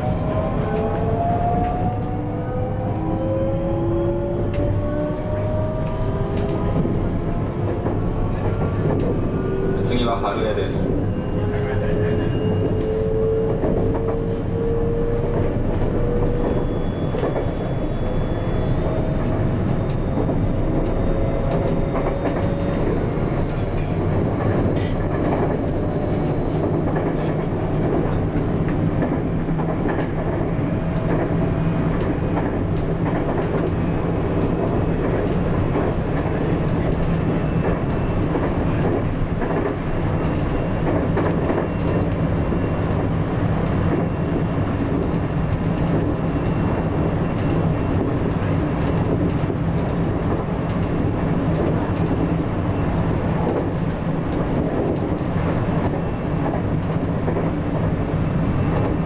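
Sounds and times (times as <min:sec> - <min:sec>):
wheels rumbling on rail: 0:00.0 - 0:59.0.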